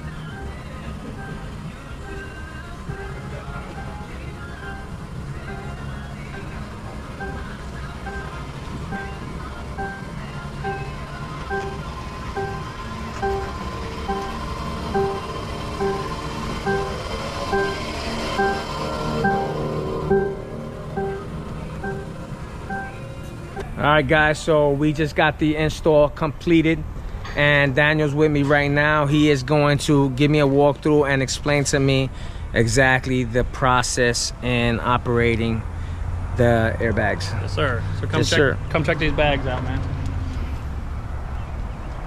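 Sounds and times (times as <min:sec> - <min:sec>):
music with short repeating notes: 0:00.0 - 0:23.8
steady low musical backing: 0:00.0 - 0:42.0.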